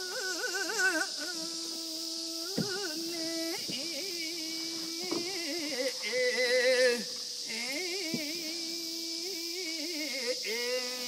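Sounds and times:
man singing unaccompanied: 0:02.4 - 0:11.0.

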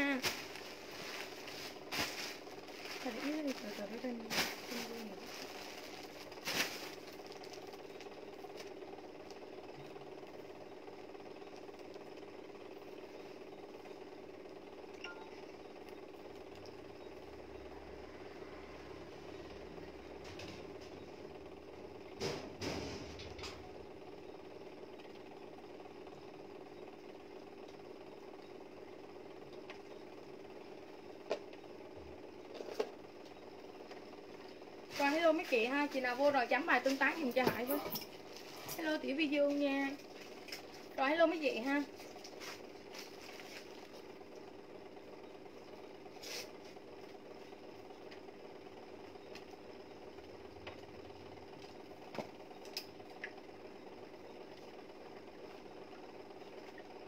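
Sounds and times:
low machine hum: 0:00.0 - 0:57.0
rustles: 0:00.2 - 0:07.7.

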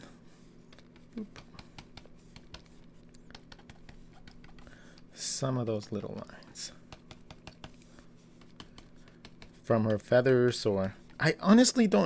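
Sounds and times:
stylus tapping on graphics tablet: 0:00.7 - 0:05.1, 0:05.8 - 0:11.3.

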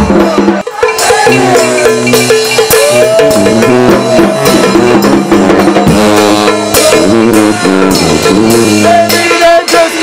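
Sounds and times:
bass drum and cymbal beat: 0:00.0 - 0:10.0
brass band playing: 0:00.0 - 0:10.0
sousaphone bass line: 0:00.0 - 0:10.0.

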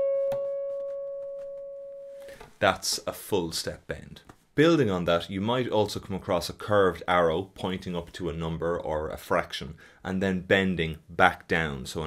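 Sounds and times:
bent guitar string ringing: 0:00.0 - 0:02.4.

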